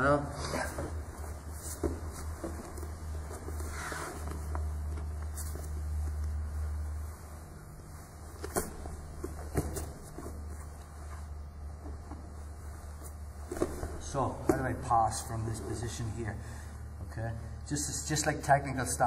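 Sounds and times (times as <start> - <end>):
steady low hum: 0.0 - 19.0
fabric rustling: 0.7 - 14.5
hands and feet knocking on mat: 8.4 - 10.4.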